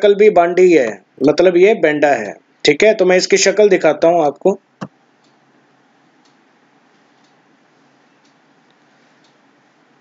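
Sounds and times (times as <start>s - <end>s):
low steady hiss: 0.0s - 10.0s.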